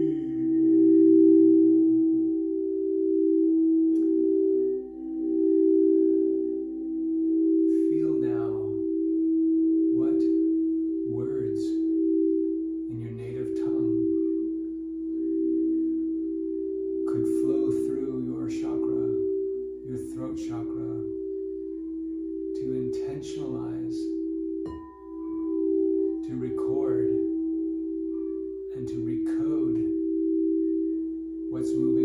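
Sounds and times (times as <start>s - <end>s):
singing bowls ringing: 0.0s - 32.0s.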